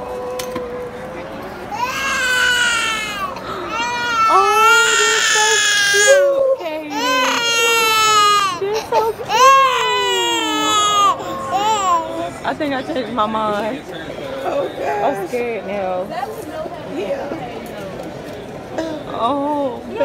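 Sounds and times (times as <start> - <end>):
toddler crying: 1.7 - 12.2.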